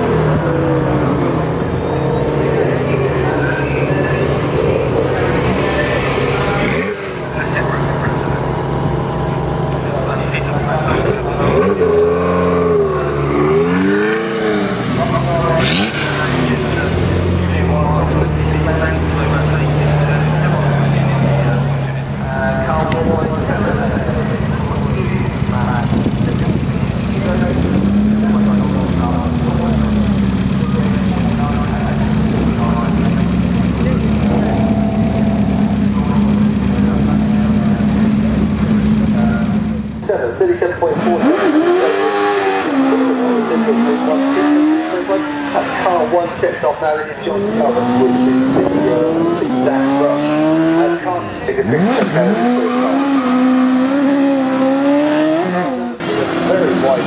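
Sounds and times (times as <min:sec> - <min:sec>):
car engines pulling away: 0:00.0 - 0:57.0.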